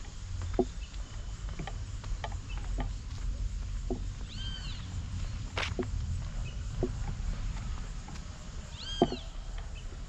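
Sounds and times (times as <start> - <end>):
steady low rumble: 0.0 - 10.0
walking footsteps: 0.0 - 10.0
animal call: 8.7 - 9.4.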